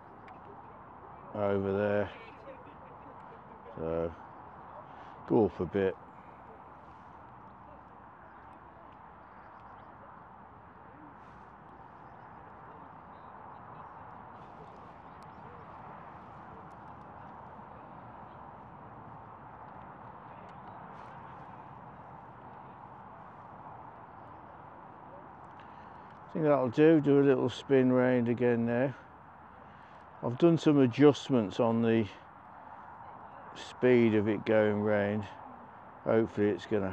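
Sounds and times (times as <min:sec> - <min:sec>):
faint outdoor background noise: 0:00.0 - 0:36.9.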